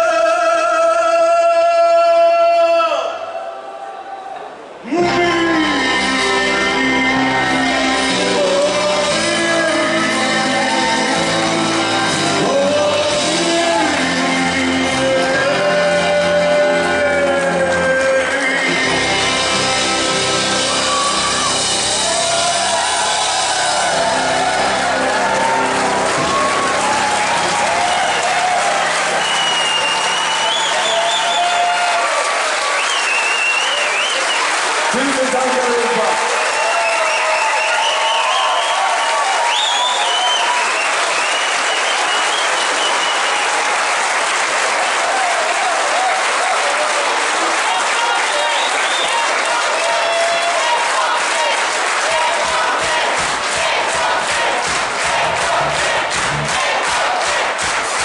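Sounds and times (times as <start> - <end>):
audience applauding and cheering: 3.6 - 58.0
band's low sustained notes: 55.1 - 56.5.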